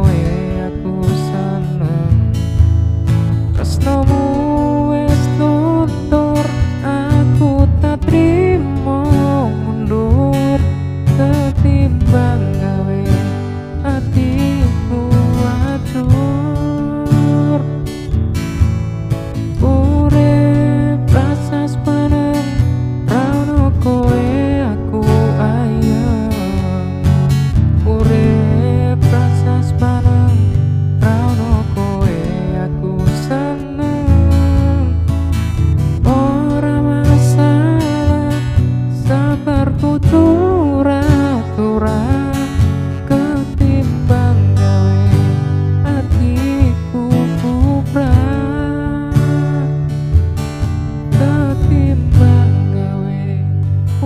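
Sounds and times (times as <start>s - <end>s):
man singing pop song: 0.0s - 54.0s
strummed acoustic guitar: 0.0s - 54.0s.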